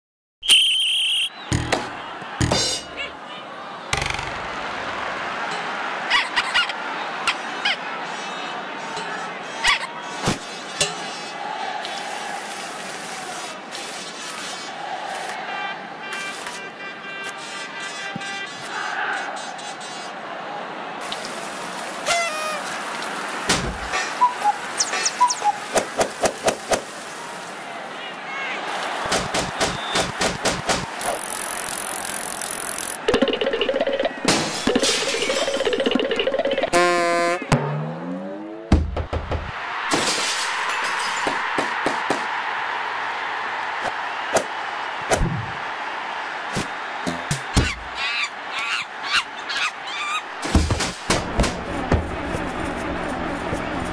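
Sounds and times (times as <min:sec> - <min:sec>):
cartoon sound effect hits and thuds: 0:01.5 - 0:03.0.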